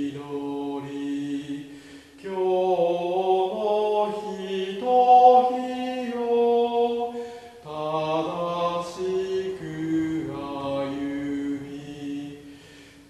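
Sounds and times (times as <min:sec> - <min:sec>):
voices singing a hymn: 0:00.0 - 0:13.0
breath: 0:01.7 - 0:02.2, 0:07.1 - 0:07.6, 0:12.4 - 0:13.0.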